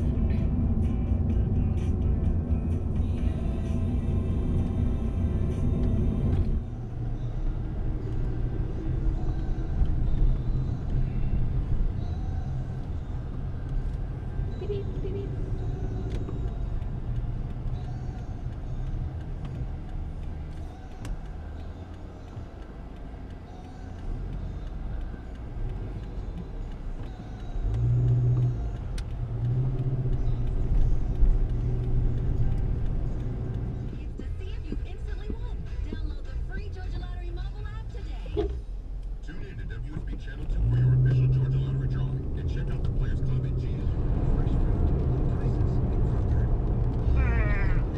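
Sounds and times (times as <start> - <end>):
car engine and road noise: 0.0 - 47.9
car radio speech and music: 0.0 - 47.9.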